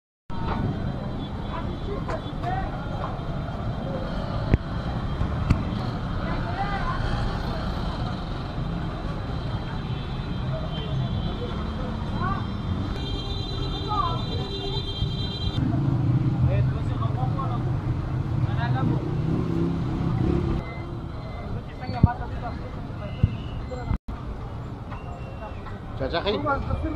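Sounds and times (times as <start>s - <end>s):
traffic rumble: 0.3s - 26.9s.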